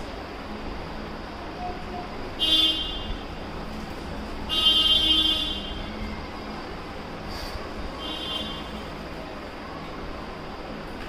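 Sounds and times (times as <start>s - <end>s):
steady low hum: 0.0s - 11.0s
vehicle horn honks: 2.4s - 3.2s, 4.5s - 5.8s, 8.0s - 8.7s.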